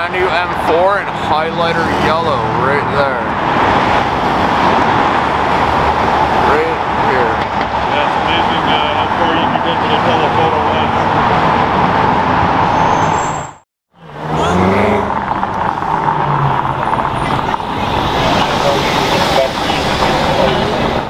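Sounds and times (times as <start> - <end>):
cars driving past: 0.0 - 21.0
faint voices: 17.1 - 21.0.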